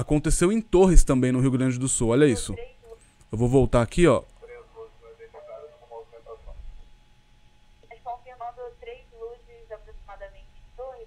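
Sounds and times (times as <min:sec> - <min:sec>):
tinny radio voices talking: 0:04.4 - 0:06.6.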